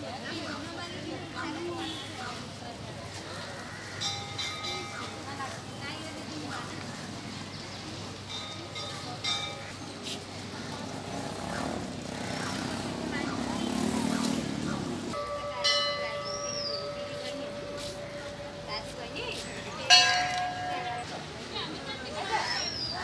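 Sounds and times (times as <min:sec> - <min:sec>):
murmur of crowd voices: 0:00.0 - 0:23.0
temple bell ringing: 0:04.0 - 0:05.5, 0:08.3 - 0:09.8, 0:15.1 - 0:21.1.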